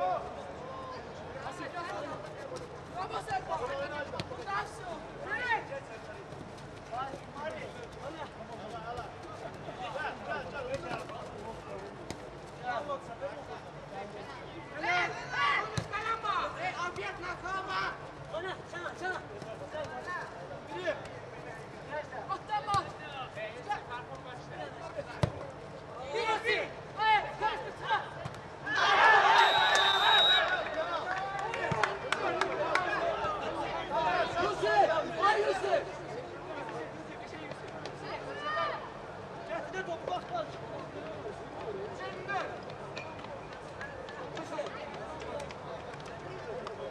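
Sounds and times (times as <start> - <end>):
footballers shouting: 26.1 - 36.0
short whistle: 29.4 - 30.5.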